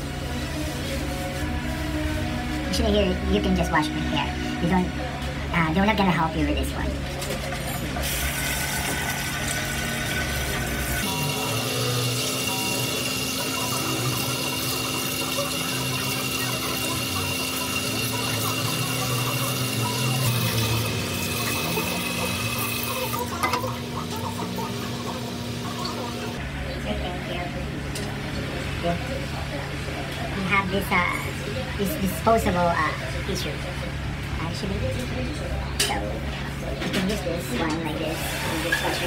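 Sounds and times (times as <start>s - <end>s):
shower head spraying water on hair: 8.0s - 26.4s.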